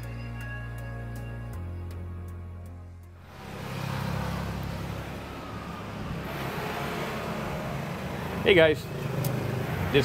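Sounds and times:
street traffic rumble: 0.0s - 10.0s.

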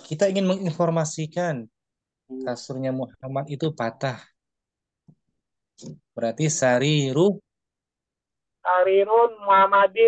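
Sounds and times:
person speaking: 8.6s - 10.0s.

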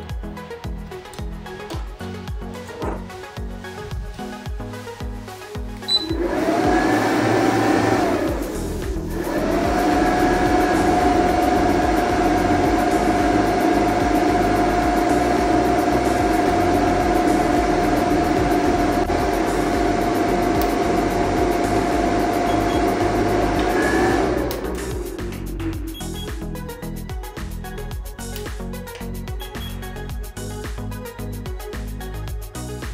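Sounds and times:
cooling fan whirring with a whine: 5.8s - 26.8s.

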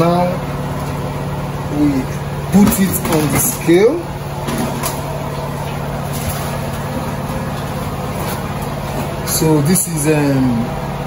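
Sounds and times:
motor humming: 0.0s - 11.0s.

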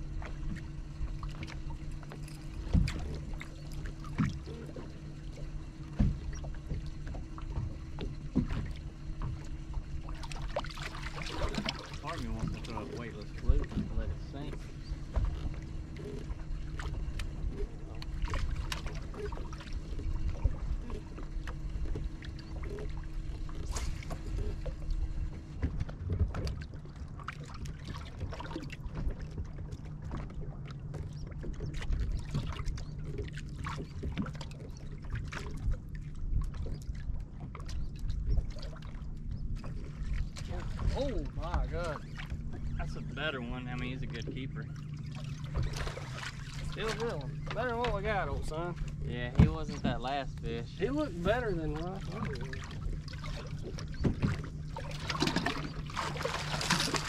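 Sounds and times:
water noise: 0.0s - 57.0s
wind: 0.0s - 57.0s.

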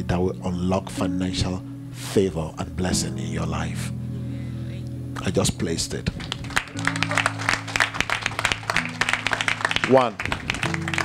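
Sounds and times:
low instrumental chords: 0.0s - 11.0s
hand-clapping: 6.0s - 11.0s.

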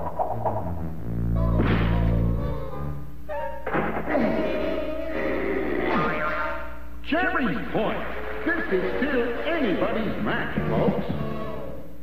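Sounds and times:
cartoon music with sliding notes: 0.0s - 3.6s.

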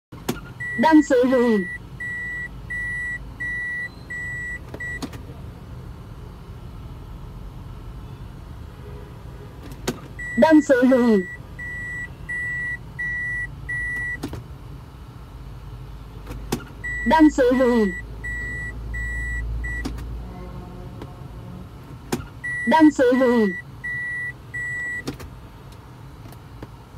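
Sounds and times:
car engine idling hum: 0.1s - 26.9s
reverse warning beeps: 0.6s - 5.0s, 10.2s - 14.2s, 16.8s - 19.9s, 22.4s - 25.0s
gear shifter click: 24.6s - 26.8s.

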